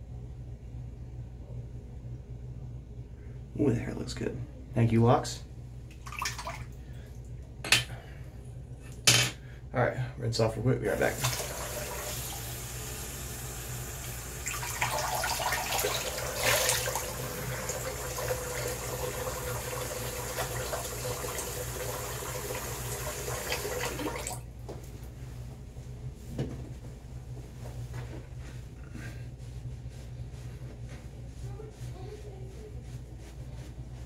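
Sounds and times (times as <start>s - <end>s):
water splashing: 6.0s - 6.8s, 11.0s - 12.5s, 14.4s - 24.4s
sink tap running: 10.9s - 24.4s.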